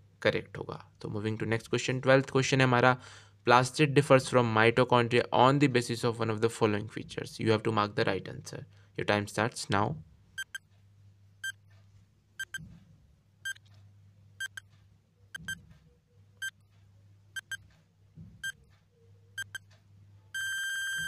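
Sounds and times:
short electronic beeps: 12.4s - 12.6s, 13.4s - 13.6s, 15.3s - 15.6s, 17.4s - 17.6s, 20.4s - 21.0s
long steady beep: 20.4s - 21.0s.

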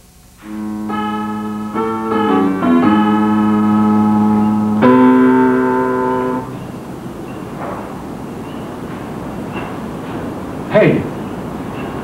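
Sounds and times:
sustained keyboard chords: 0.0s - 10.0s
quiet background noise: 0.0s - 12.0s.

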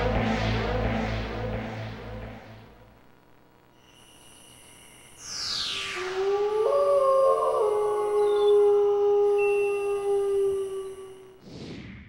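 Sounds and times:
falling synth sweep: 0.0s - 2.8s, 5.2s - 9.2s
sustained synth chords: 0.0s - 3.2s
wolf howl: 5.8s - 11.4s.

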